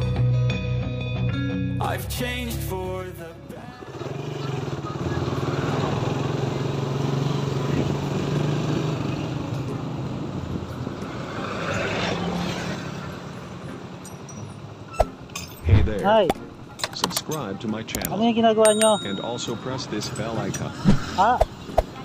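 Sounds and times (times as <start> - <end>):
vehicles passing: 1.8 - 22.0.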